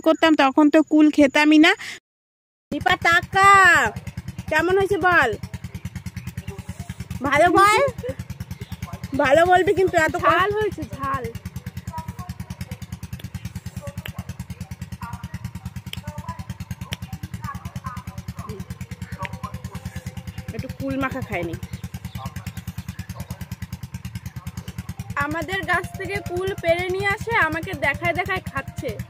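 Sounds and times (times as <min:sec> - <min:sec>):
woman speaking: 0:00.0 - 0:02.0, 0:02.7 - 0:05.4, 0:07.1 - 0:08.2, 0:09.1 - 0:11.4, 0:20.5 - 0:21.6, 0:25.2 - 0:29.0
engine running steadily: 0:02.7 - 0:29.0
faint voices: 0:03.2 - 0:29.0.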